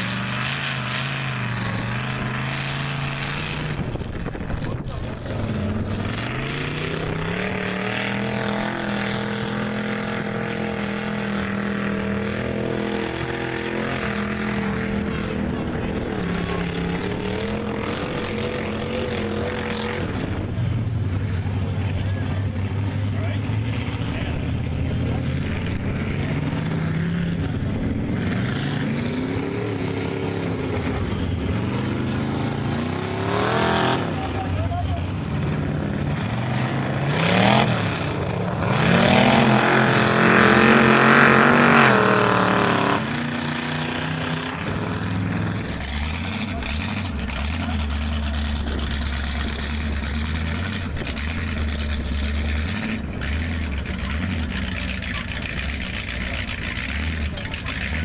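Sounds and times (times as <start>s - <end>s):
truck engines revving: 0.0s - 58.0s.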